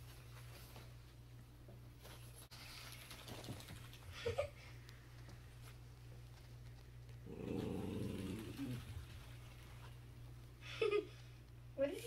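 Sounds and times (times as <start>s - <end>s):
small dog growling: 7.2s - 9.2s.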